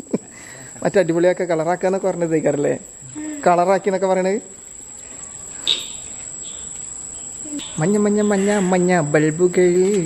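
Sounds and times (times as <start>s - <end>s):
crickets trilling: 0.0s - 10.0s
person speaking: 7.4s - 10.0s.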